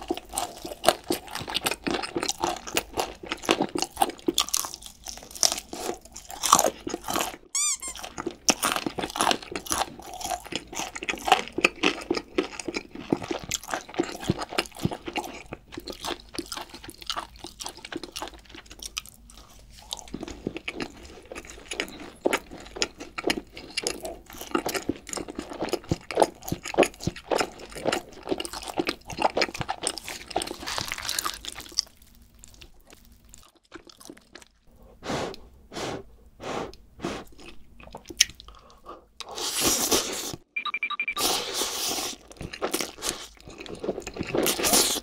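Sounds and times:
crunching crispy fried chicken: 0.0 - 34.7, 41.4 - 45.0
wet chewing: 0.0 - 40.4, 41.6 - 45.0.

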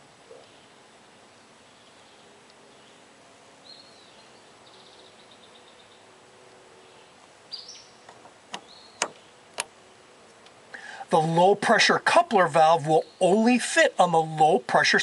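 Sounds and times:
birds chirping faintly: 0.0 - 15.0.

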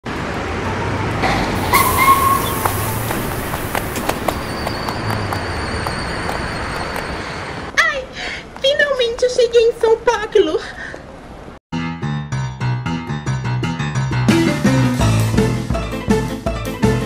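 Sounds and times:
street traffic: 0.0 - 11.6.

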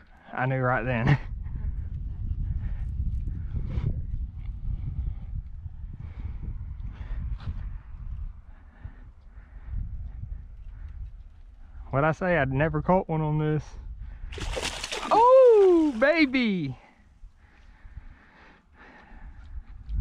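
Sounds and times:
wind buffeting microphone rumble: 0.7 - 20.0.

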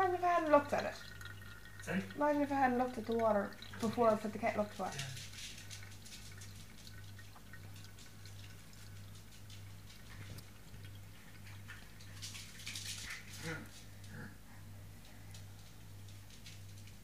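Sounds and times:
water dripping: 0.0 - 13.4.

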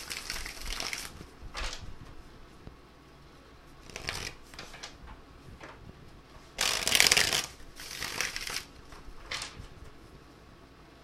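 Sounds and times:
cards being shuffled: 0.0 - 2.2, 3.8 - 5.0, 6.6 - 10.0.

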